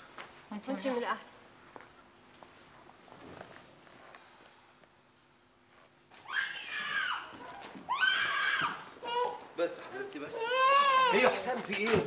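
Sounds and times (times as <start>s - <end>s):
infant crying: 6.3s - 11.4s.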